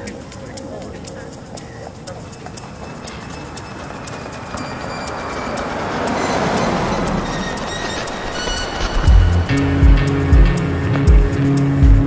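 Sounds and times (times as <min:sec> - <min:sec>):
sharp high clicks: 0:00.0 - 0:10.6
electronic drone music: 0:01.0 - 0:12.0
faint held high tones: 0:02.6 - 0:10.3.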